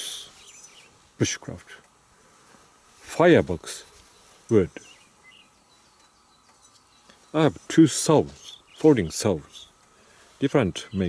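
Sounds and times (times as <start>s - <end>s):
faint high chirps: 0.0s - 1.0s.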